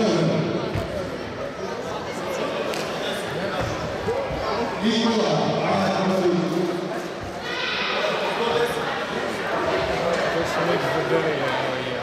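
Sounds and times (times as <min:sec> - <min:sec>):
people talking in echoing hall: 0:00.0 - 0:12.0.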